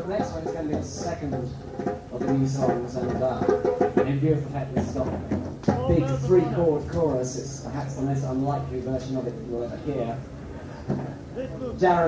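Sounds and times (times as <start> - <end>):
percussion knocks: 0.0 - 8.8
indistinct talking: 0.0 - 12.0.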